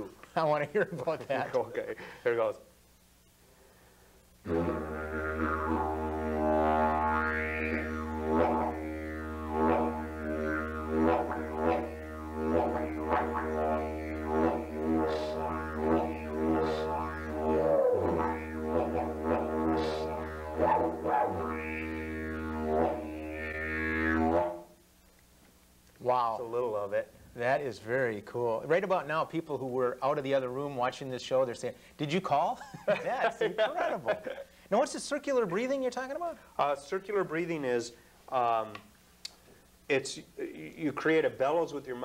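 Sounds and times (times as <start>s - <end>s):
didgeridoo drone: 4.4s - 24.8s.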